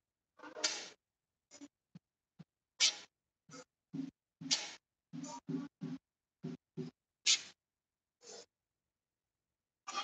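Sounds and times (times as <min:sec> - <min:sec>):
marker squeaking on whiteboard: 0:02.7 - 0:03.8, 0:04.4 - 0:05.5, 0:06.8 - 0:07.6, 0:08.2 - 0:08.5.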